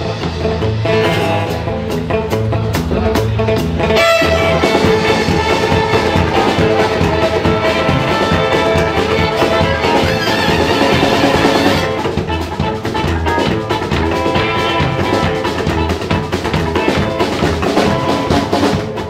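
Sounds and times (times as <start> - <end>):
drum kit: 0.0 - 19.0
live band playing: 0.0 - 19.0.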